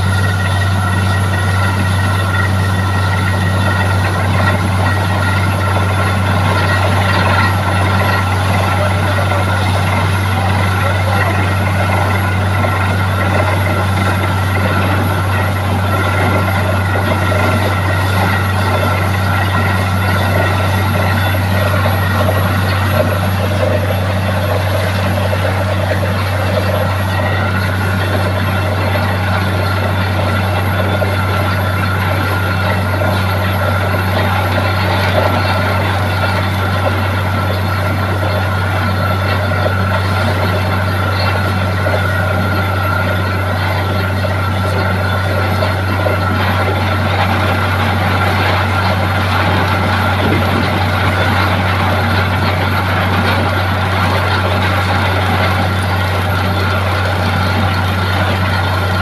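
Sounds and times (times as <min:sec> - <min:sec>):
drilling rig and compressor running: 0:00.0 - 0:59.0.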